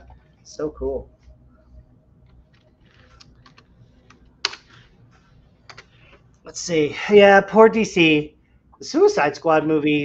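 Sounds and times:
computer keyboard keystrokes: 2.5 - 4.7.

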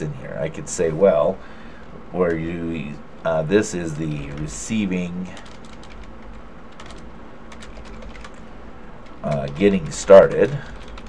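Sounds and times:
computer keyboard typing: 5.4 - 8.4, 9.0 - 11.0.

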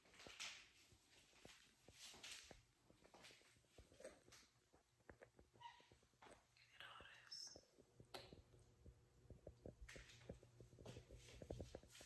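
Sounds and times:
faint whispering: 6.5 - 7.8.

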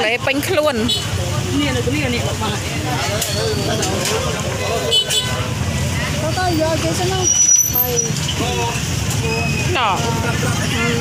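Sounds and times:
passing motor traffic rumble: 0.0 - 11.0
people talking: 0.0 - 11.0.

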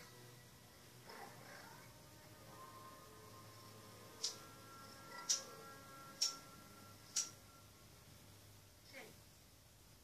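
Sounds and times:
sharp clicks: 5.2 - 5.5, 7.1 - 7.4.

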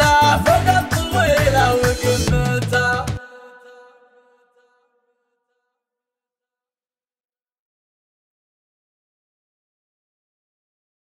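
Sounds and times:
beat and bass: 0.0 - 3.2.

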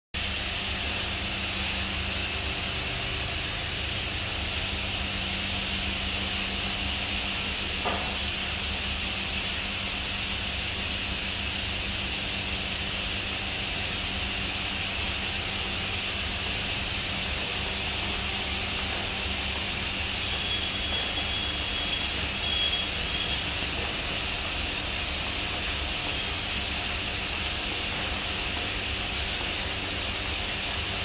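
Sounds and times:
machinery humming and hissing: 0.2 - 31.0
brief knock: 7.8 - 8.2.

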